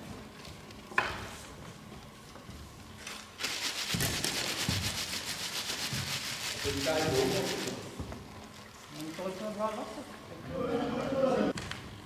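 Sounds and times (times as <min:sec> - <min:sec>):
loud rasping rubbing noise: 0:03.4 - 0:08.0.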